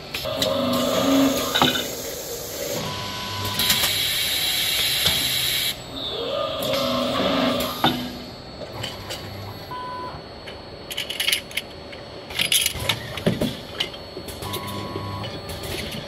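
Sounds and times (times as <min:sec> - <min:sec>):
steady machine background: 0:00.0 - 0:16.0.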